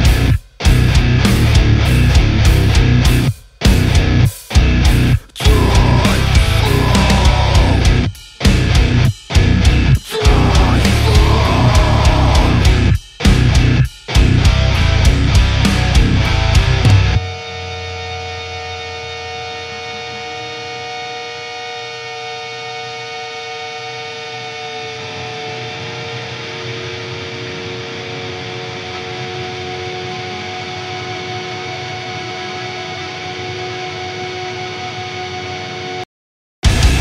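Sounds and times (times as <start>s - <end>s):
band playing distorted music: 0.0s - 20.5s, 36.6s - 37.0s
distorted electric guitar droning: 0.0s - 36.0s, 36.6s - 37.0s.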